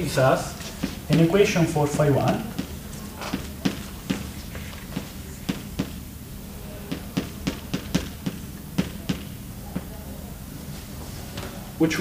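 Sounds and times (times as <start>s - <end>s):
chalk tapping on blackboard: 0.6s - 6.0s, 6.9s - 9.9s.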